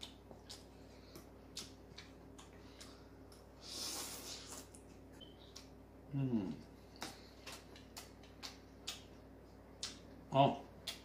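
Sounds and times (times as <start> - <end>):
person chewing noodles: 0.0 - 11.0.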